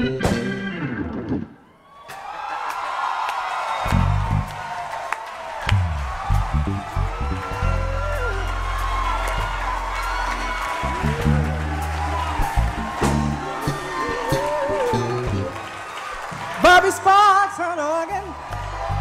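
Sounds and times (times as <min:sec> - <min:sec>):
electric bass notes: 0:00.0 - 0:01.5, 0:03.9 - 0:04.5, 0:05.7 - 0:15.7
hammond organ chords: 0:00.0 - 0:01.5, 0:08.6 - 0:15.6.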